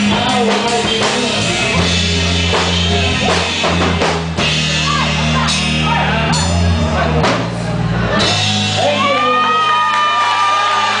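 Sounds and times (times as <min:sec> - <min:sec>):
live rock band chord: 0:00.0 - 0:09.5
audience cheering and whooping: 0:08.1 - 0:11.0.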